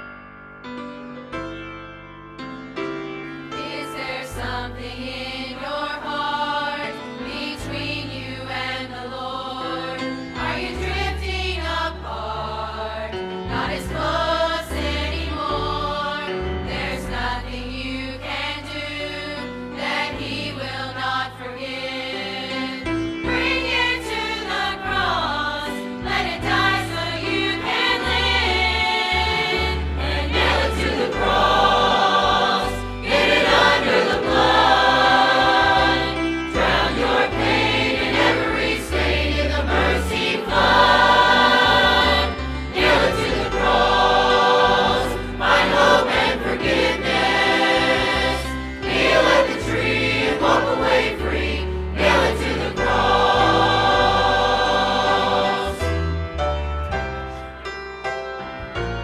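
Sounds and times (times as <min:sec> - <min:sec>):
instrumental accompaniment: 0:00.0 - 0:59.0
choir singing gospel: 0:03.5 - 0:56.4.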